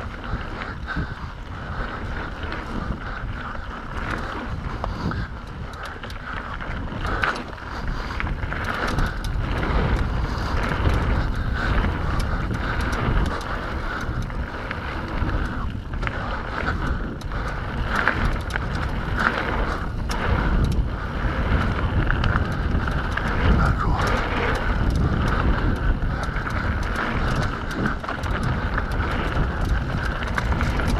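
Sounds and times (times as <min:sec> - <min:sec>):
bike clicks and rattles: 0:00.0 - 0:30.9
wind rushing over microphone: 0:00.0 - 0:30.9
tyres rumbling on dirt: 0:01.4 - 0:30.9.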